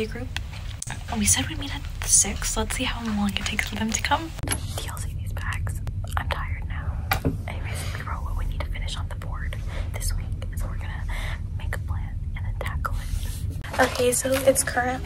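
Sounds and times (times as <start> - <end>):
low steady hum: 0.0 - 15.0
woman whispering: 4.7 - 13.4.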